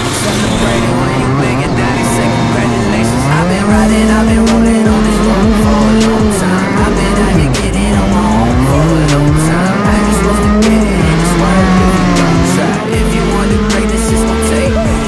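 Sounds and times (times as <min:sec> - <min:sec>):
kart engine revving hard: 0:00.0 - 0:15.0.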